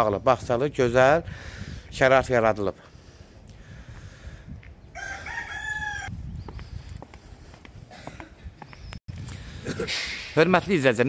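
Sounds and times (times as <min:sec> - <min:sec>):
rooster crowing: 0:04.9 - 0:06.1.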